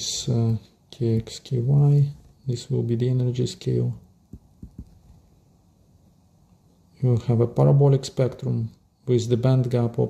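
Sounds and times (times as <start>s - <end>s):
faint low hum: 0.0s - 10.0s
stylus tapping on tablet screen: 4.3s - 5.2s.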